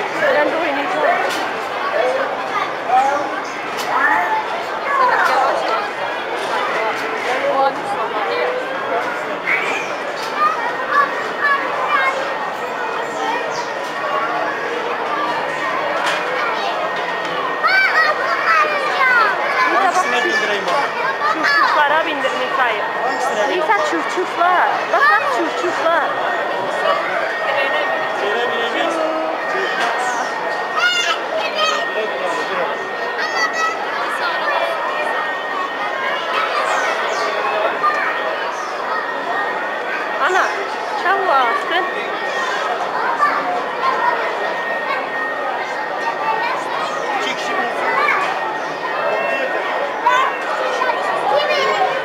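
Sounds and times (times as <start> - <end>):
high-pitched voices chattering: 0.0 - 52.0.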